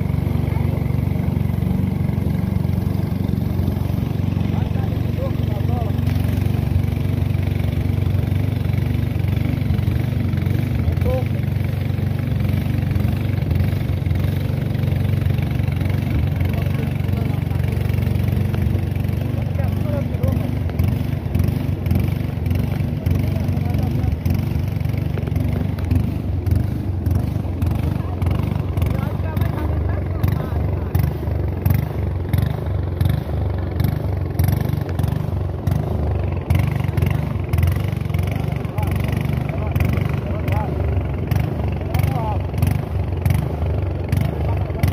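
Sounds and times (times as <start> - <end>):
small boat motor droning: 0.0 - 44.9.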